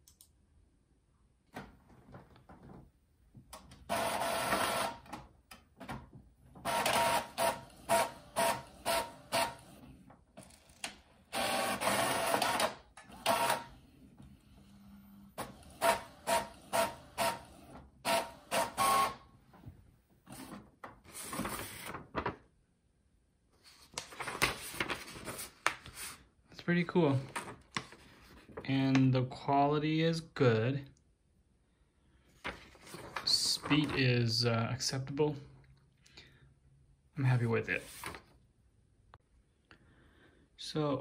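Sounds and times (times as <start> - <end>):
inkjet printer whirring: 3.9 - 5.0, 6.6 - 9.9, 11.3 - 19.2.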